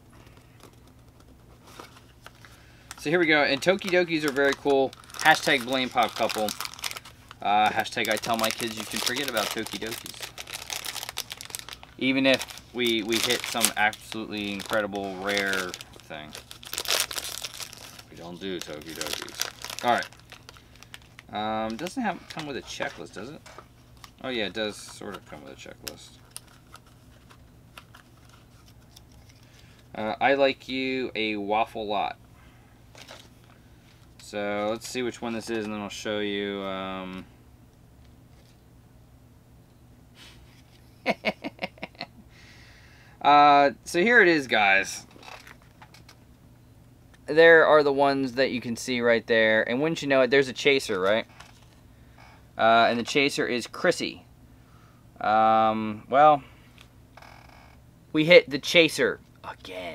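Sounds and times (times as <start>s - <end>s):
low room hum: 0.0s - 59.9s
package rustling: 0.3s - 29.8s, 45.1s - 46.2s.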